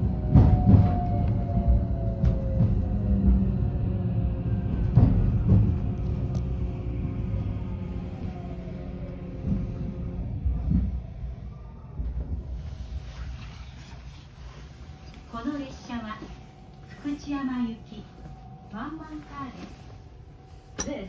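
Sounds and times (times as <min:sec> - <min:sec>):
electric train cabin rumble: 0:00.0 - 0:21.0.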